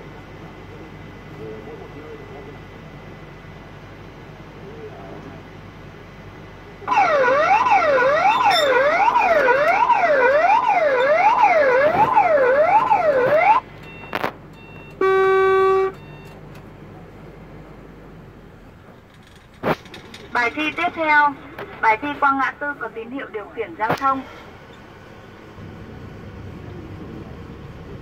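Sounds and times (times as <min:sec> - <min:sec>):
wailing electronic siren: 0:06.9 - 0:13.7.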